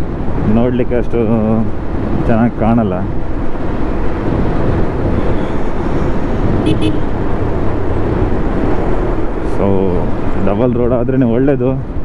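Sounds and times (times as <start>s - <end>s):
road and wind rush: 0.0s - 12.0s.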